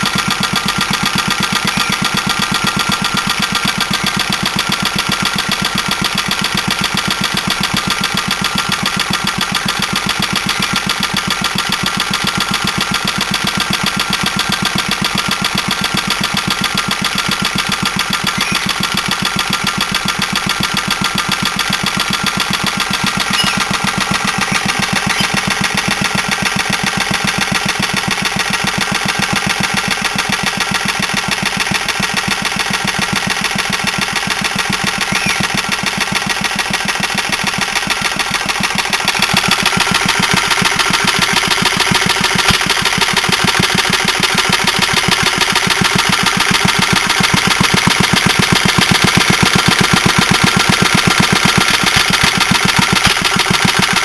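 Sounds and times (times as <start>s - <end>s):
single-cylinder engine running: 0.0s - 54.0s.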